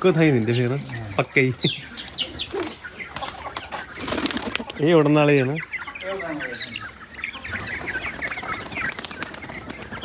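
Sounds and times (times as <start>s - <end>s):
fowl clucking: 0.0s - 10.0s.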